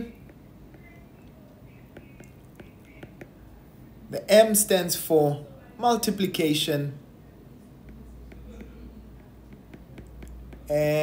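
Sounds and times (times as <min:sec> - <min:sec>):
stylus tapping on glass screen: 0:00.1 - 0:01.0, 0:01.7 - 0:03.4, 0:07.8 - 0:10.8.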